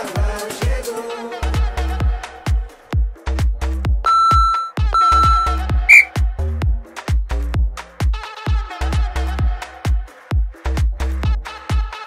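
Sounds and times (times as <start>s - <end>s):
house music with steady beat: 4.1s - 6.1s
timer beeps: 4.1s - 6.1s.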